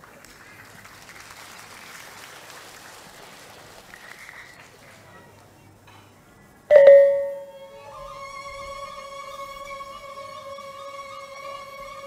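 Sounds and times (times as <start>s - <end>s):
gong-kettles struck and ringing: 6.7s - 7.6s
higher held tone: 6.7s - 7.8s.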